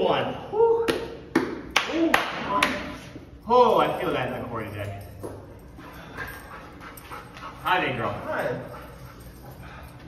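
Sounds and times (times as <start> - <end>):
dog panting: 5.7 - 10.0.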